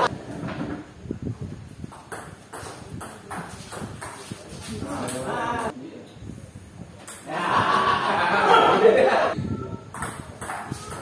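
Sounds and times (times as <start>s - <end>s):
ping pong ball clacking off paddles: 2.0s - 4.4s, 7.0s - 7.3s, 9.9s - 11.0s
ball bouncing on table: 9.9s - 11.0s.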